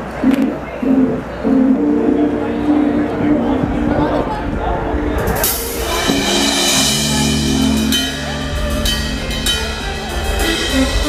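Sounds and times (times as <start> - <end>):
held low notes: 0.0 - 11.0
live rock band playing: 0.9 - 11.0
cymbal crash: 5.2 - 11.0.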